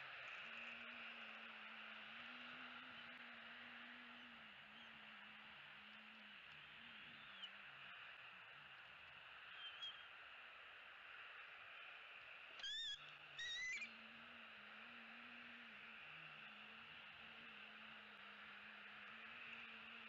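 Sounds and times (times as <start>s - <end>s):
faint short chirps: 9.5s - 10.1s
eagle piping calls: 12.6s - 13.9s.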